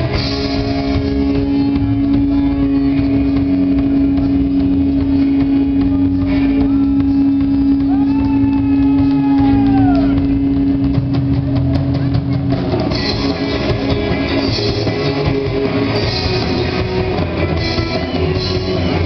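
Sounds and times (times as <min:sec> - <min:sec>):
drum hits: 0:00.0 - 0:19.0
rock band playing live: 0:00.0 - 0:19.0.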